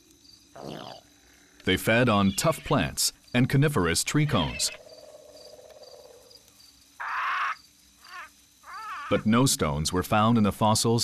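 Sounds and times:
faint forest background: 0.0 - 11.0
rasping animal call: 7.0 - 9.3.

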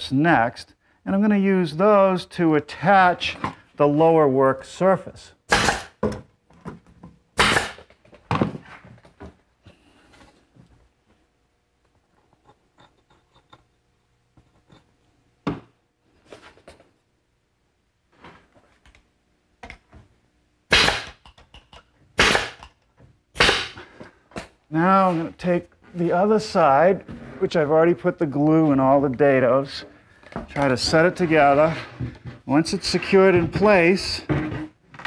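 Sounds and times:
nail gun shots: 5.5 - 6.0, 7.4 - 7.9, 20.7 - 21.3, 22.2 - 22.7, 23.4 - 23.9.

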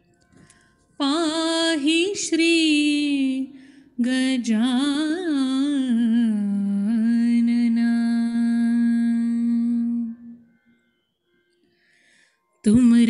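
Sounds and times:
woman singing unaccompanied: 1.0 - 10.4, 12.6 - 13.0.

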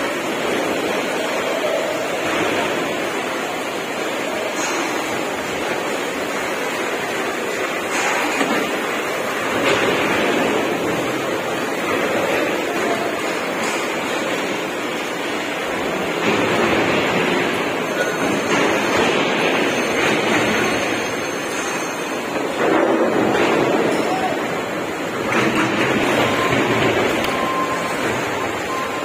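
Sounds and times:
rushing din of workshop hall: 0.0 - 29.0.

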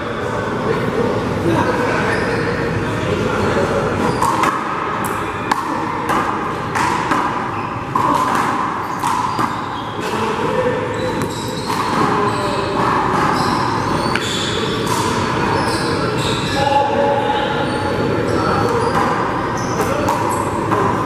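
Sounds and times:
steady background noise: 0.0 - 21.0.

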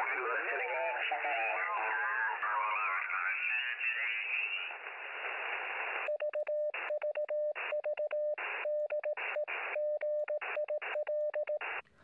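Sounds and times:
radio static: 0.0 - 6.1
morse code tone: 6.1 - 11.8.

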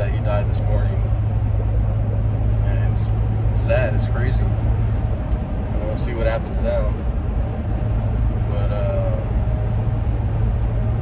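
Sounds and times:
road and engine rumble in cabin: 0.0 - 11.0.

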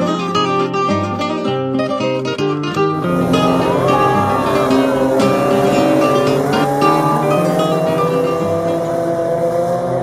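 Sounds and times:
background music of held notes: 0.0 - 10.0
cars passing by: 2.8 - 10.0
stock car engines running: 2.8 - 10.0.

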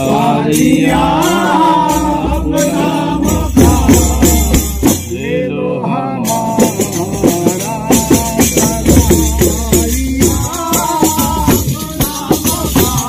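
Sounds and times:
frame drum beats: 0.0 - 5.2, 6.3 - 13.0
men chanting together: 0.0 - 13.0.

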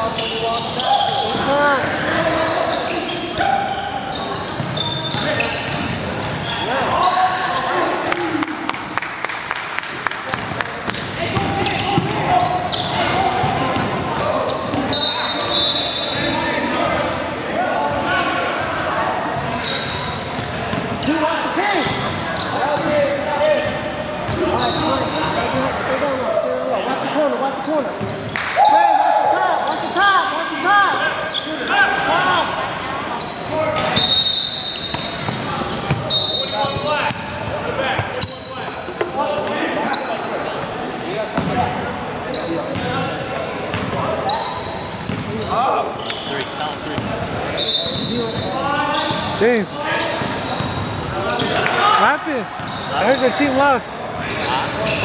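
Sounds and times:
sneakers squeaking: 0.0 - 8.5, 10.3 - 26.5, 27.5 - 28.8, 29.7 - 55.0
players calling out: 10.2 - 26.8.

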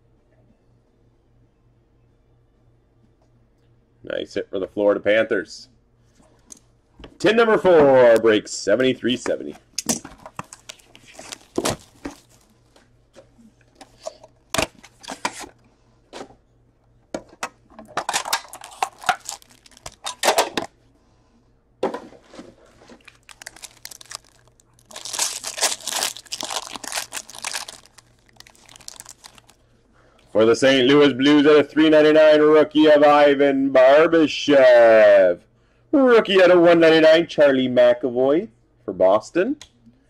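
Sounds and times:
foil wrapping crinkling and tearing: 10.5 - 12.6, 18.1 - 20.2, 23.0 - 29.6.

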